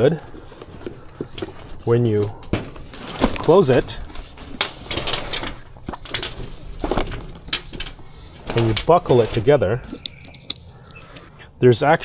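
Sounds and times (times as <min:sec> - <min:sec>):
nylon fabric rustling: 0:00.0 - 0:09.8.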